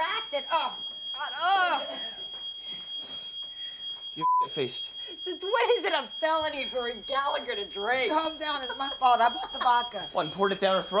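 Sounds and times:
smoke alarm high-pitched tone: 0.0 - 11.0.

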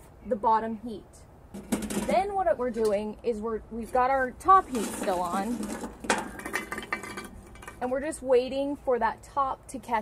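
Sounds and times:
charcoal scraping on metal lid: 3.8 - 7.9
charcoal clinking on cast iron: 4.6 - 7.9.

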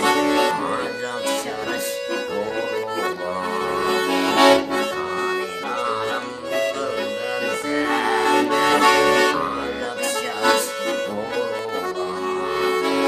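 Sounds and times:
button accordion playing melody: 0.0 - 13.0.

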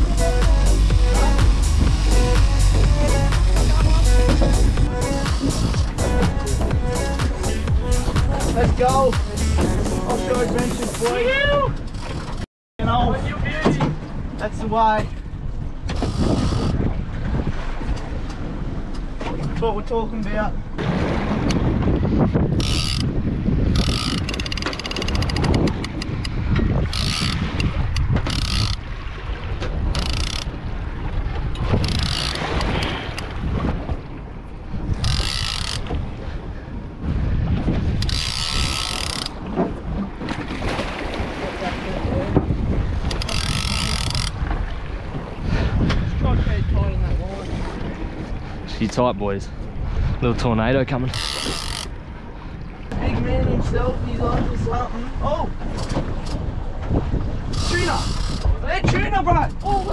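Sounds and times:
sea noise: 0.0 - 59.9
wind: 0.0 - 59.9
fishing reel whirring: 23.8 - 25.4, 26.9 - 27.4, 28.3 - 28.8, 31.8 - 32.5, 35.0 - 35.8, 43.2 - 44.4, 51.2 - 51.9.

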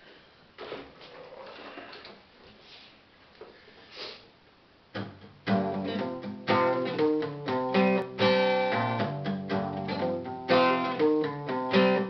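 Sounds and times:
guitar handling rustling: 0.0 - 3.8.

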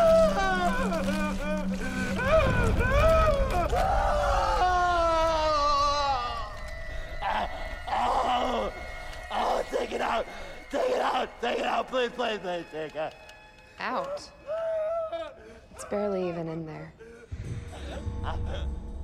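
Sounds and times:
man sobbing and gasping: 0.0 - 5.8, 14.4 - 15.8, 17.0 - 19.0.

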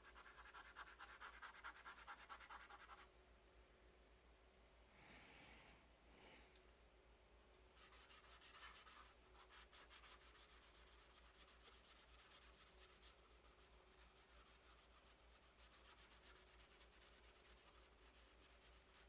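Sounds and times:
paintbrush scratching on painting: 0.0 - 3.1, 7.8 - 19.0.

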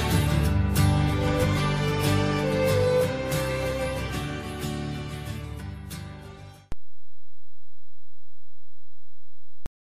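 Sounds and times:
background music: 0.0 - 6.7
steady low electronic tone: 6.7 - 9.7.

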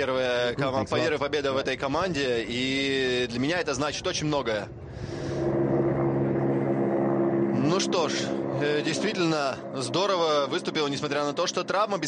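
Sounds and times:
helicopter droning: 4.7 - 12.0.

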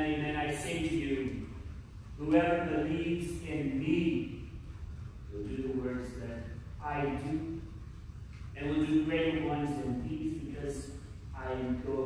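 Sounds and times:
man speaking: 0.0 - 1.6, 2.2 - 4.6, 5.3 - 7.7, 8.5 - 12.0.

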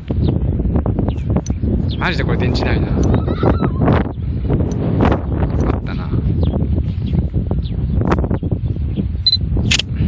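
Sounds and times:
wind buffeting microphone: 0.0 - 10.0
short electronic beep: 9.2 - 9.4
camera shutter click: 9.6 - 9.9.

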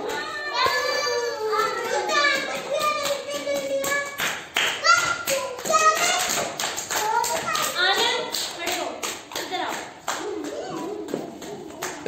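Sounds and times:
children's voices: 0.0 - 8.6, 9.3 - 12.0
sharp hand claps: 0.0 - 12.0.

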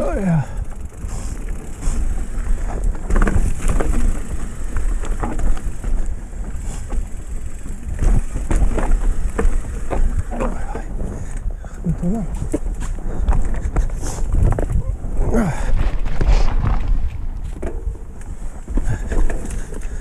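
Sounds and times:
bike rattling over rocks: 0.0 - 20.0
wind on microphone: 0.5 - 20.0.

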